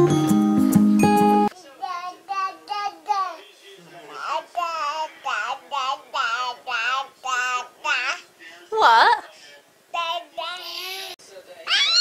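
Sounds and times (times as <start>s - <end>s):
baby babbling: 1.8s - 3.4s, 4.2s - 9.2s, 10.0s - 11.2s.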